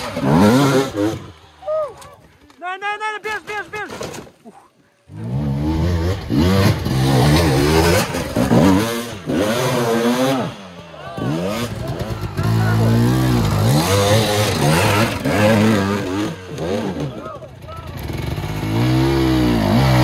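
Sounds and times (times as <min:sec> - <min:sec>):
dirt bikes revving: 0:00.0 - 0:02.4, 0:05.0 - 0:20.0.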